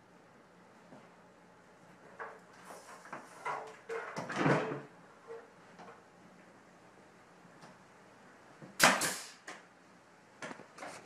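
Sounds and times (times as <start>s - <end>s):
faint room noise: 0.0s - 11.0s
nail gun firing: 8.8s - 9.5s.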